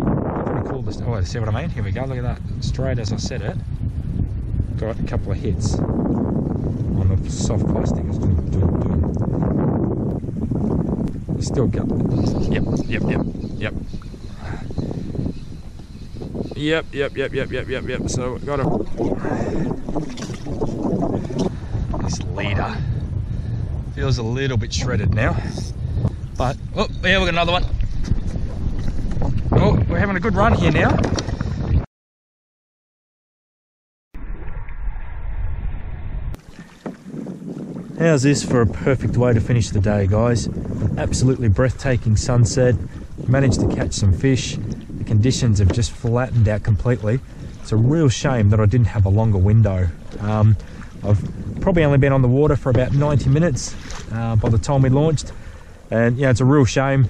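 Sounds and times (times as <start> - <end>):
wind buffeting microphone: 0.0 - 31.9, 34.2 - 57.0
waves lapping against plastic hull: 17.4 - 23.8, 24.5 - 31.8, 36.3 - 57.0.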